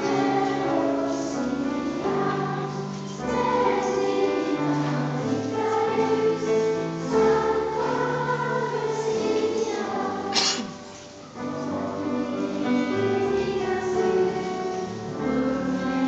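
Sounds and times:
children's choir singing: 0.0s - 16.0s.

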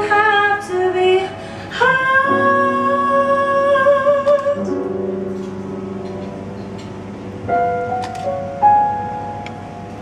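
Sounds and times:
woman singing a long note: 0.0s - 4.7s
grand piano chords: 1.3s - 10.0s.

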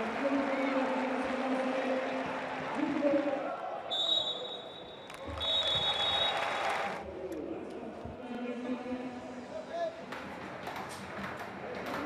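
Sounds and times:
stadium crowd noise: 0.0s - 12.0s
referee whistle blasts: 3.9s - 6.4s.

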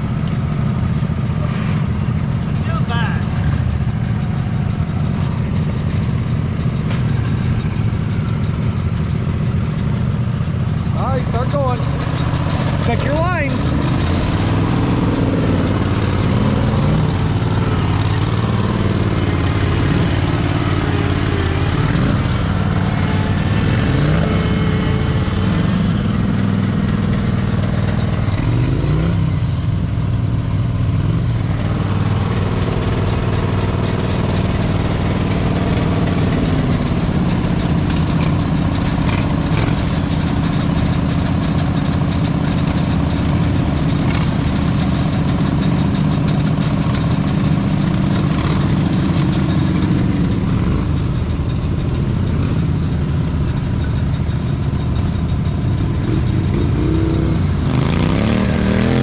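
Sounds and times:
lawn tractor engines revving: 0.0s - 59.0s.

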